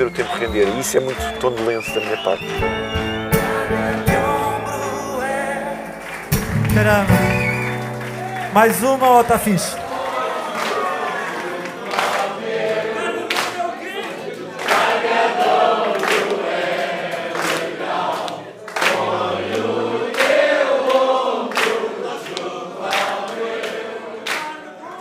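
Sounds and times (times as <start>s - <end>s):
crowd singing together: 3.0s - 6.4s, 9.9s - 25.0s.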